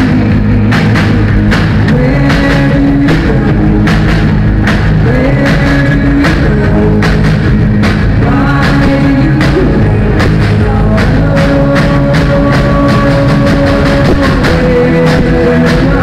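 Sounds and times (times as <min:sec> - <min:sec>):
drum kit steady beat: 0:00.0 - 0:16.0
rock band playing live: 0:00.0 - 0:16.0.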